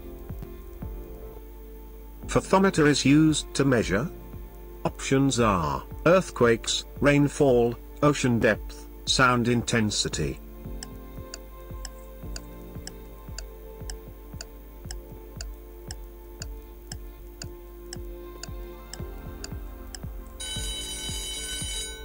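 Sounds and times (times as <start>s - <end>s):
background music: 0.0s - 22.0s
clock ticking: 10.8s - 21.8s
high alarm ring: 20.4s - 22.0s.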